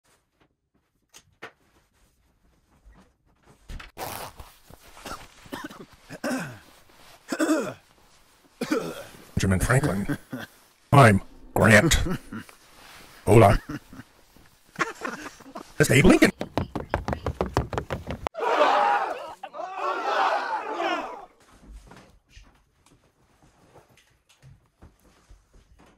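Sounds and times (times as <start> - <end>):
high-pitched voices yelling: 18.4 - 21.3.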